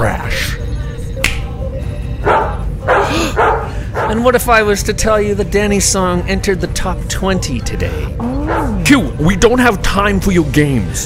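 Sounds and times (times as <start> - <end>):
dog barking: 2.2 - 4.3.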